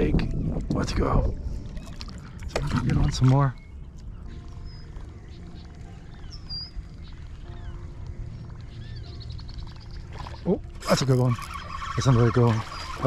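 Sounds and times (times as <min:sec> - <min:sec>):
wind rumbling on microphone: 0:00.0 - 0:13.0
faint bird calls: 0:03.5 - 0:13.0.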